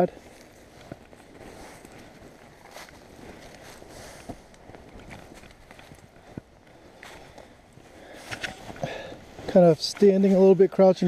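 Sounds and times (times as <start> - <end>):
footsteps on dry leaves: 0.0 - 10.6.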